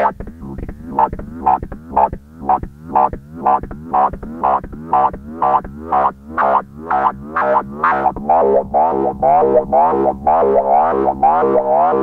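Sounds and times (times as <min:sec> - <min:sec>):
synthesizer loop of gliding notes: 0:00.0 - 0:12.0.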